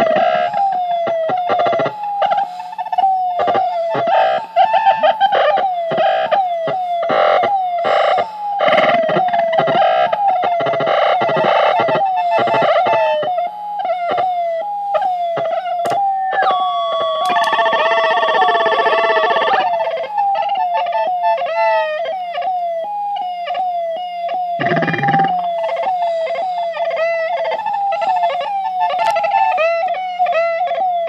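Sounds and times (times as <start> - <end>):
synthesizer blips sliding down: 16.0 - 19.6, 24.6 - 26.4.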